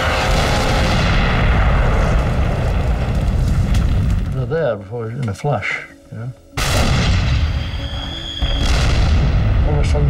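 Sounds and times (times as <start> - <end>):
tank gunfire blasts: 8.4 - 9.6.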